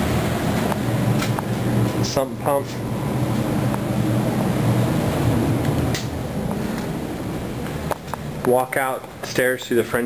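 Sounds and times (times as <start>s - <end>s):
hvac equipment humming: 0.0s - 10.0s.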